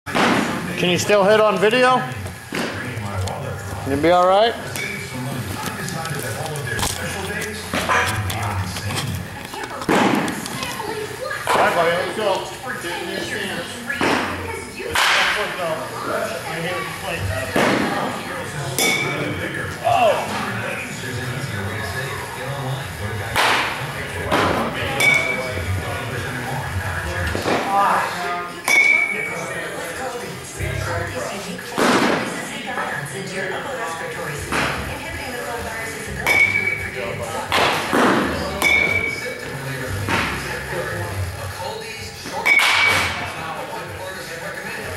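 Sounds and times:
voices: 0.1s - 44.9s
metal bat hitting baseballs: 4.7s - 5.0s, 18.8s - 19.3s, 23.3s - 25.5s, 28.6s - 29.3s, 36.2s - 36.8s, 37.5s - 39.2s, 42.4s - 43.3s.

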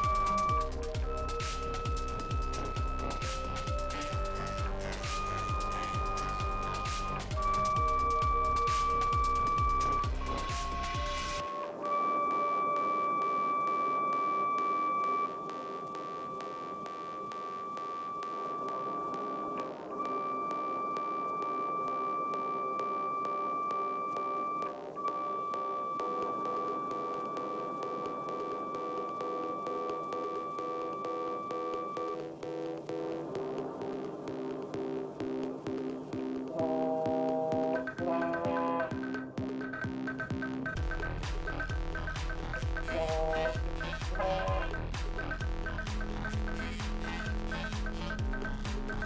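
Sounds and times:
pure test tone: 0.0s - 39.4s, 40.1s - 49.0s
background music with steady beat: 0.0s - 49.0s
low steady tone: 0.0s - 49.0s.

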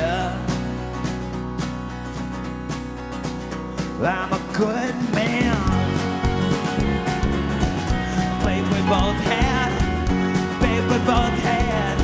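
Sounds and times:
country rock band playing: 0.0s - 12.0s
drums: 0.0s - 12.0s
strummed acoustic guitar: 0.0s - 12.0s
bending melody line: 5.2s - 12.0s.

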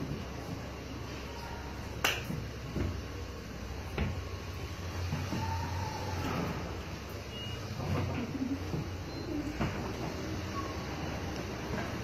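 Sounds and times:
finger snap: 2.0s - 2.4s.

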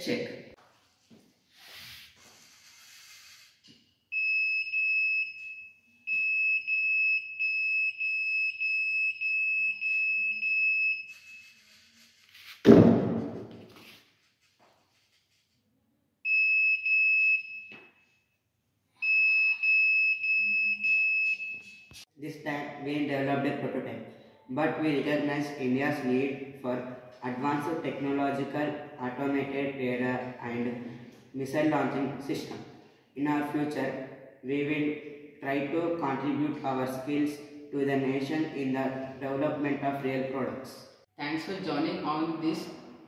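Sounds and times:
loud thump: 12.6s - 13.7s.

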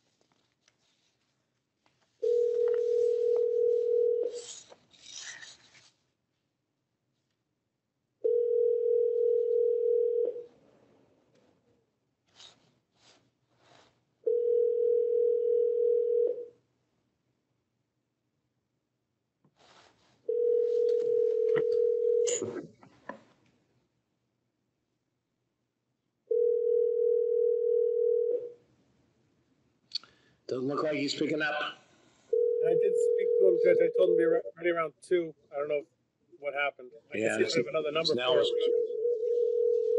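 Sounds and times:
telephone ringback tone: 2.2s - 4.4s, 8.2s - 10.4s, 14.3s - 16.5s, 20.3s - 22.4s, 26.3s - 28.5s, 32.3s - 34.4s, 38.2s - 39.9s.

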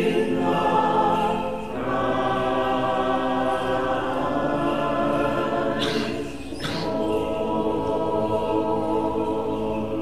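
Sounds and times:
choir singing unaccompanied: 0.0s - 10.0s.

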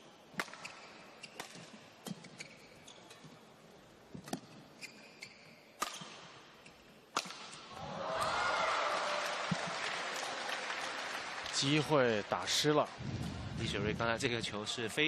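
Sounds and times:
rackets hitting shuttlecock: 0.3s - 2.5s, 5.8s - 6.4s, 7.1s - 8.3s.

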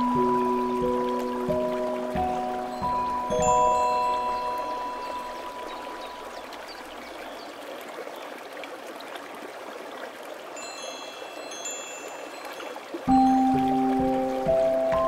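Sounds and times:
stream water flowing: 0.0s - 15.0s
wind chime tones: 2.3s - 7.4s, 10.6s - 15.0s.

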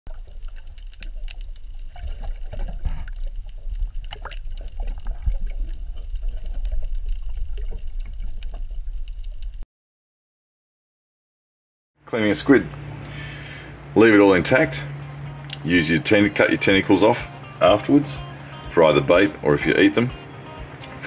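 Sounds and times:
sharp clicks and crackles: 0.1s - 9.6s
underwater rumble of water: 0.1s - 9.6s.

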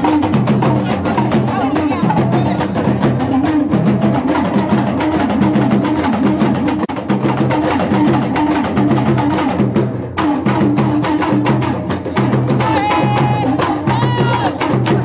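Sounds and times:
drum-driven dance music: 0.0s - 15.0s.

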